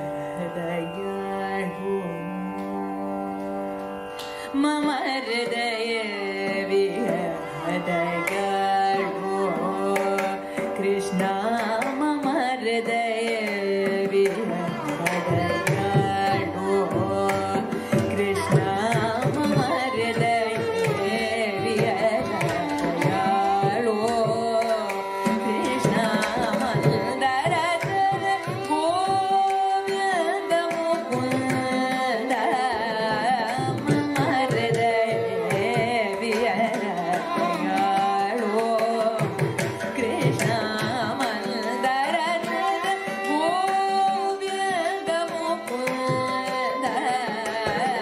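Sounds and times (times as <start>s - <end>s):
mridangam strokes: 0.0s - 48.0s
violins: 0.0s - 48.0s
woman singing ornamented phrases: 4.5s - 48.0s.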